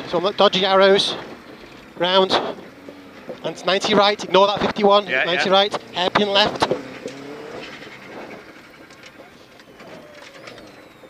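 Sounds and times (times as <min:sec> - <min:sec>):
rally car engine from inside: 0:00.0 - 0:11.0.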